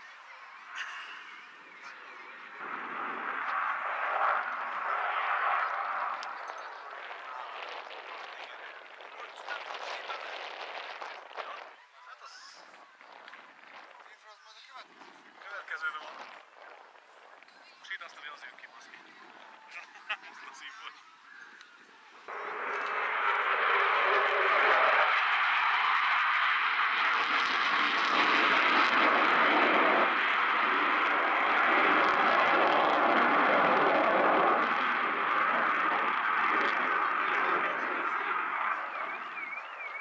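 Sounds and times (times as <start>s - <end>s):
jet engines passing overhead: 0.0s - 40.0s.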